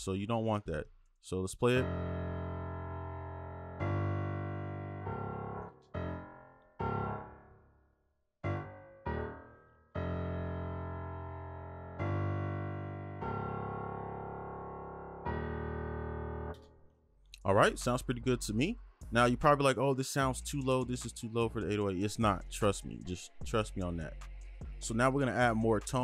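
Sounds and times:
low synth bass notes: 0:01.8 - 0:06.2.

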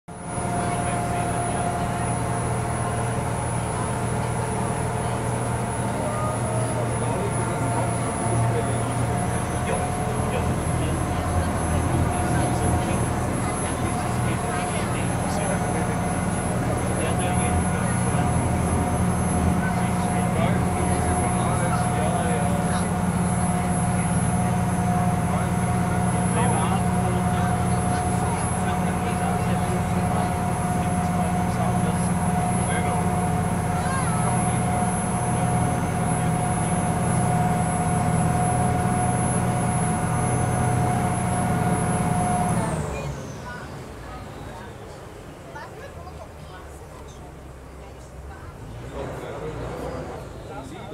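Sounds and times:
boat engine droning with whine: 0:00.1 - 0:50.9.

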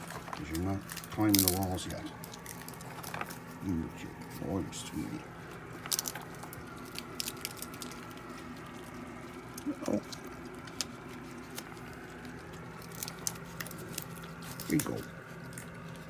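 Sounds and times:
animals chewing peanuts: 0:00.0 - 0:16.0.

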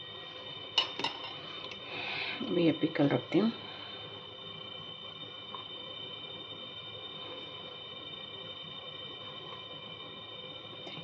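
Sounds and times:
background hum: 0:00.0 - 0:11.0
faint high whine: 0:00.0 - 0:11.0.

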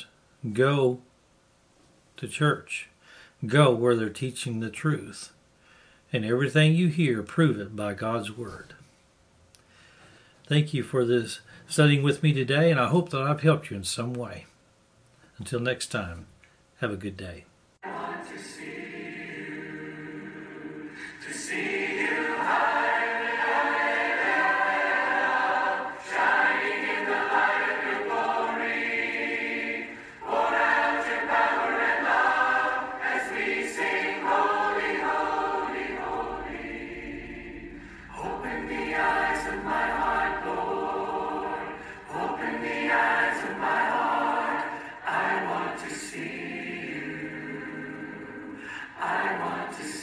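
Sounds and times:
choir singing: 0:17.8 - 0:50.0.

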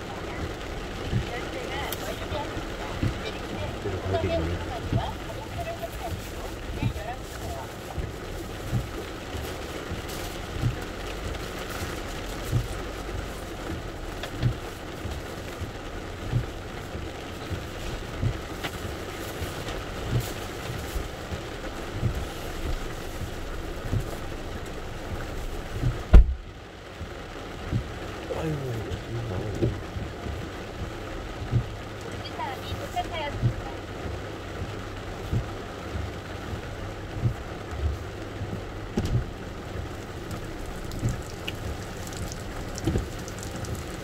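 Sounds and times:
heavy rain on a car: 0:00.0 - 0:44.0
windshield wipers sweeping: 0:00.0 - 0:44.0
low thump: 0:25.8 - 0:26.5, 0:38.9 - 0:39.4.

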